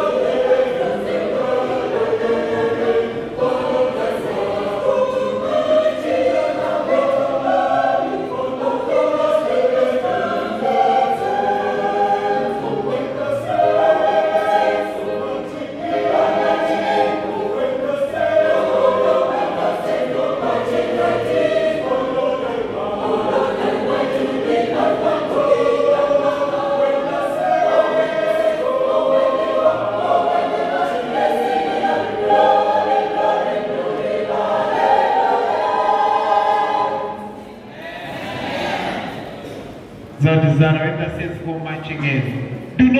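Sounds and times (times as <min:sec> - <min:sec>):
choir singing gospel harmony: 0:00.0 - 0:40.1.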